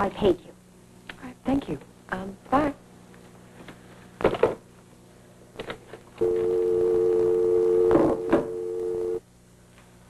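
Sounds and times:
steady dial tone: 6.2 - 9.2.

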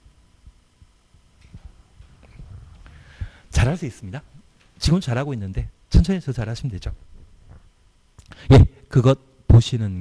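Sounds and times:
low hum: 0.0 - 9.6
faint low thumps: 0.4 - 3.7.

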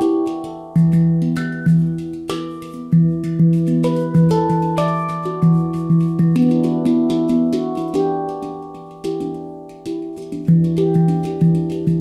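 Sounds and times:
handpan notes ringing: 0.0 - 12.0.

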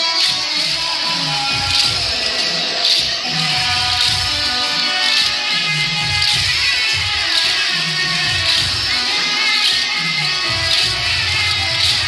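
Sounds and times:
loud devotional music with steady beat: 0.0 - 12.0.

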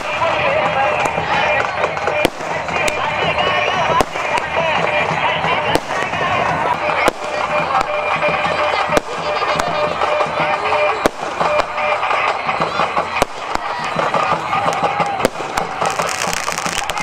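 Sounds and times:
din of voices: 0.0 - 17.0
fireworks banging: 0.0 - 17.0
music: 0.0 - 17.0.

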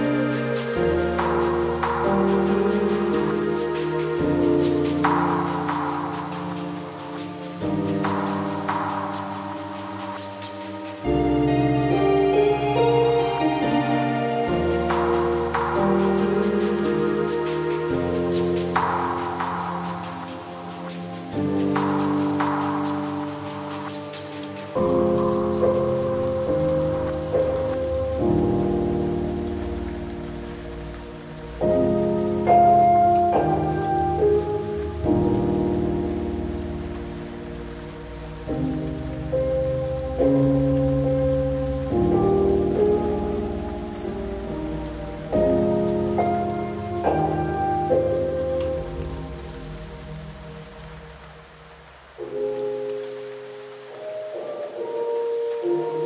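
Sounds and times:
rain: 0.0 - 56.0
soft slow piano chords: 0.0 - 56.0.

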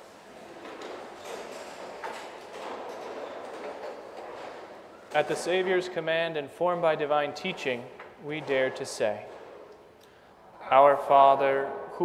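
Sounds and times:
church room noise: 0.0 - 12.0.

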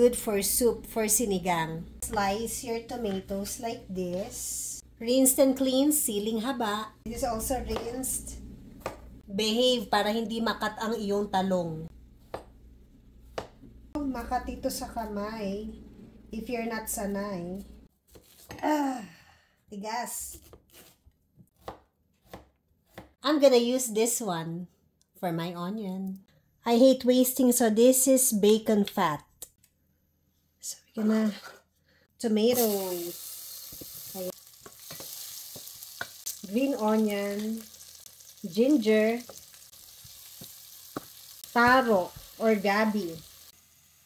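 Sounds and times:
voice: 0.0 - 8.4, 9.3 - 11.9, 14.0 - 17.8, 18.5 - 20.4, 23.2 - 29.4, 30.6 - 31.6, 32.2 - 33.2, 34.1 - 34.4, 36.4 - 37.7, 38.4 - 39.3, 41.5 - 43.2
knife chopping on cutting board: 12.2 - 12.6, 13.3 - 13.7, 21.6 - 23.2
tomatoes sizzling in fat: 32.5 - 44.0.

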